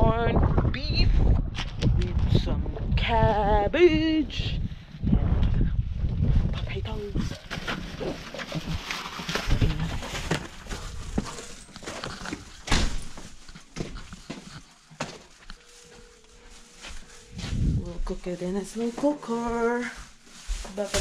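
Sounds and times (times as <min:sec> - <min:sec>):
footsteps: 0:05.2 - 0:21.0
handheld camera rustling: 0:06.0 - 0:21.0.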